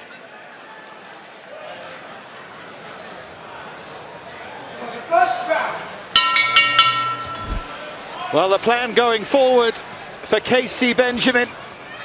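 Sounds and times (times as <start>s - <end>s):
crowd murmur: 0.0s - 5.1s, 7.0s - 10.3s
boxing ring bell: 6.2s - 8.0s.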